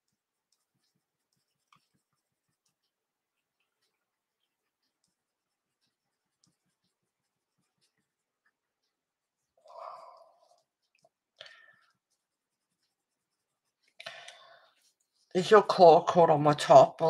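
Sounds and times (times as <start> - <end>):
pencil scratching on paper: 0.0 - 16.9.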